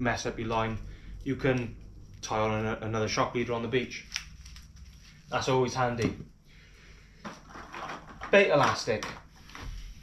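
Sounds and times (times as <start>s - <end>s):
items clattering in plastic box: 7.2s - 9.3s.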